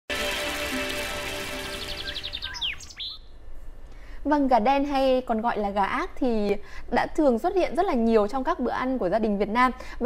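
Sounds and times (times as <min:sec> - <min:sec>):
bird downward-sweeping whistles: 0:00.8 - 0:03.3
bird trilling high chirps: 0:00.8 - 0:03.4.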